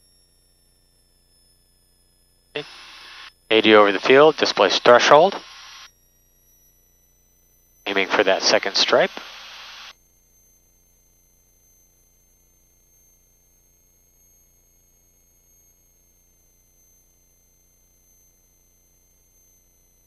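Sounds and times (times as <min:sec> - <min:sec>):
faint high electronic tones: 0:02.6 - 0:05.9, 0:07.9 - 0:09.9
headset intercom hiss: 0:02.6 - 0:05.9, 0:07.9 - 0:09.9.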